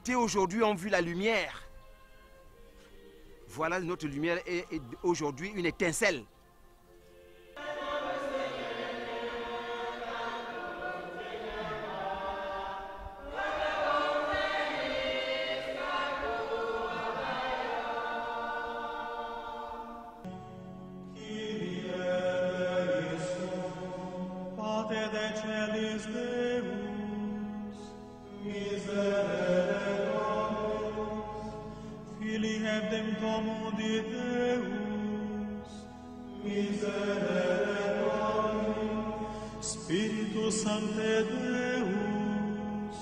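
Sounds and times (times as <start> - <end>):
group chanting a hymn: 3.7 - 6.3, 7.0 - 20.4, 21.1 - 43.0.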